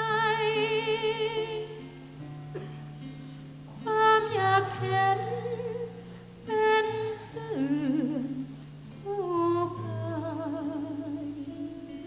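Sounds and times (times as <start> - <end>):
woman singing with vibrato: 0.0 - 2.0, 3.7 - 12.0
acoustic guitar: 0.0 - 12.0.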